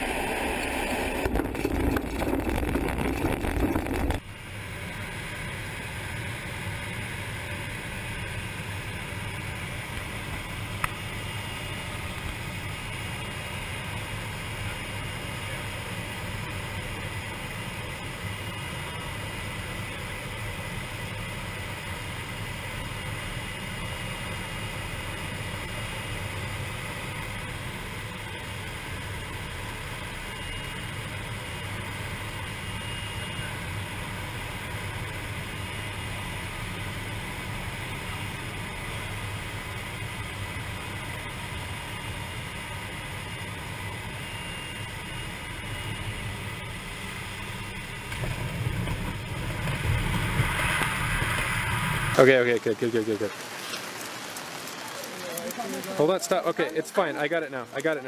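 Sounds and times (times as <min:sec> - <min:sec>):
light aircraft engine droning: 0:00.0 - 0:58.0.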